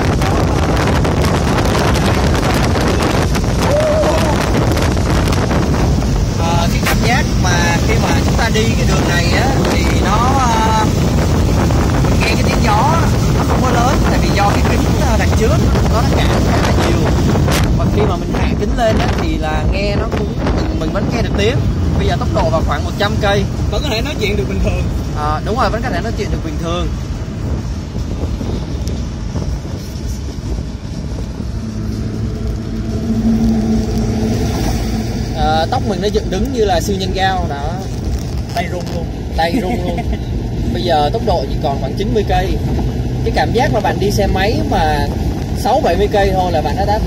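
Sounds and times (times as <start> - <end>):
low engine hum: 0.0 - 47.0
wind and road noise: 0.0 - 47.0
man's voice: 6.4 - 11.0.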